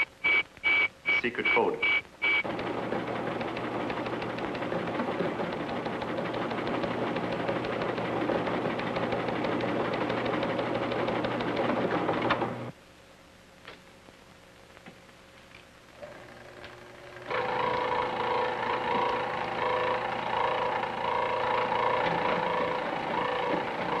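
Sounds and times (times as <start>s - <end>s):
short high beeping tones: 0.0s - 2.4s
machine clattering rapidly: 2.5s - 12.6s.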